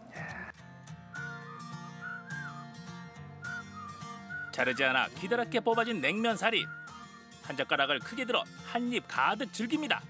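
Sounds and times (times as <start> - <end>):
whistled tune: 1.0 - 8.5.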